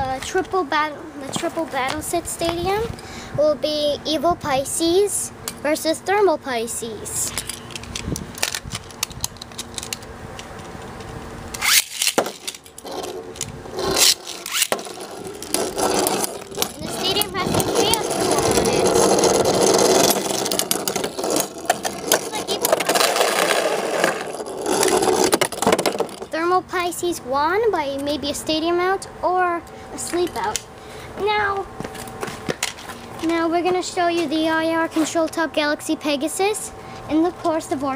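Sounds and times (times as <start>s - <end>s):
spinning tops launching clicks: 11.5s - 26.3s
spinning tops clashing and whirring: 11.6s - 26.3s.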